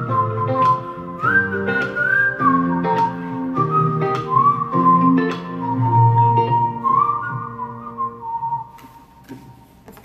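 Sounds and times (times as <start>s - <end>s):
man whistling a melody: 0.0s - 9.6s
instrumental backing track: 0.0s - 10.0s.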